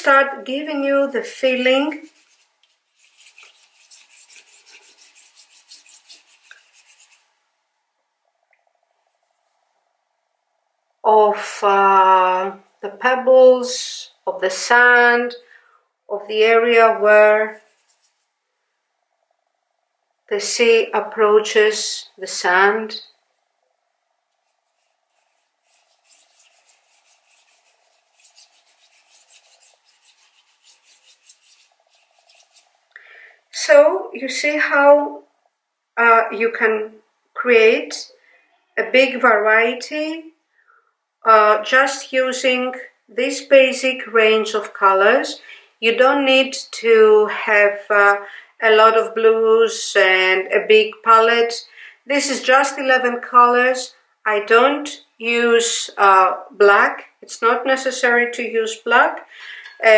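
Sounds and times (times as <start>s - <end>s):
paintbrush scrubbing on paper: 0.4s - 7.4s, 17.5s - 18.4s, 24.3s - 32.9s.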